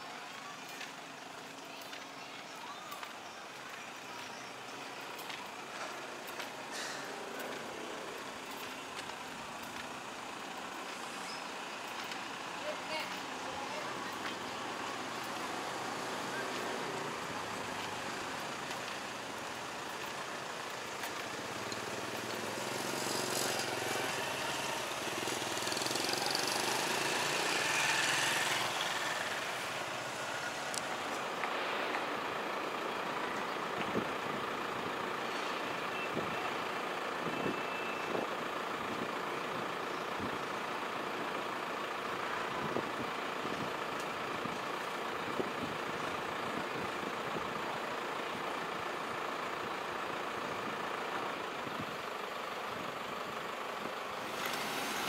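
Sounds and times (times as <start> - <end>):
motor vehicle traffic hum: 0.0 - 55.0
vehicle passing by: 21.0 - 32.3.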